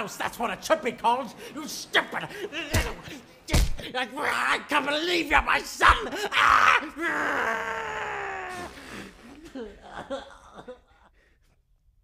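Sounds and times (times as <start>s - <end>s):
young man crying wail: 5.8s - 8.8s, 9.4s - 11.1s.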